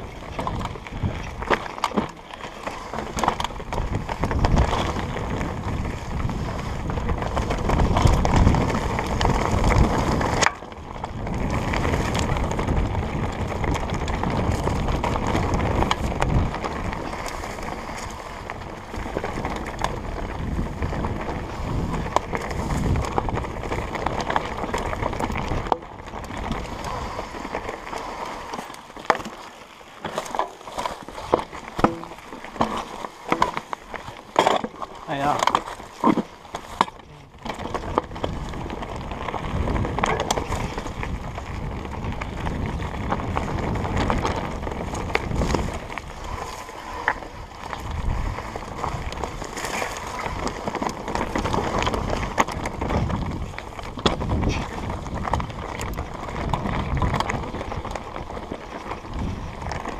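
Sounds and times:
bike rattling: 0.0s - 59.9s
bike tyres rolling over stones: 0.0s - 59.9s.

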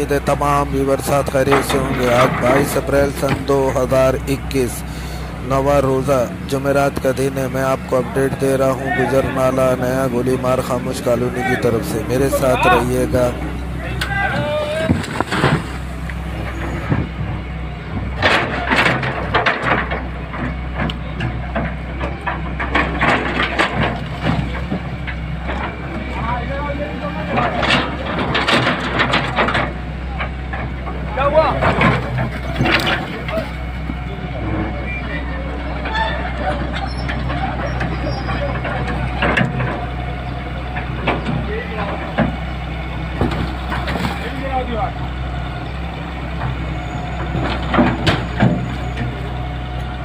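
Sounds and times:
excavator diesel engine running: 0.0s - 50.0s
men talking and shouting: 0.0s - 50.0s
masonry crashing down: 8.4s - 17.2s.

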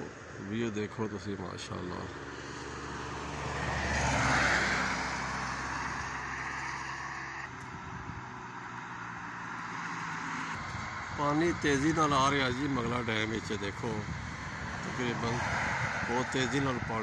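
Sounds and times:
car passing on highway: 0.0s - 17.0s
low traffic hum: 0.0s - 17.0s.

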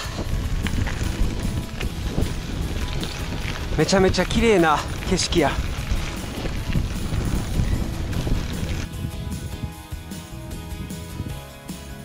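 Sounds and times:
wind buffeting microphone: 0.0s - 11.4s
background music: 0.0s - 12.0s.

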